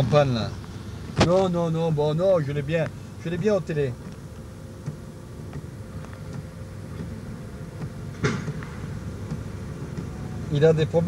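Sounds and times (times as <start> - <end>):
diesel truck engine rumbling: 0.0 - 11.0.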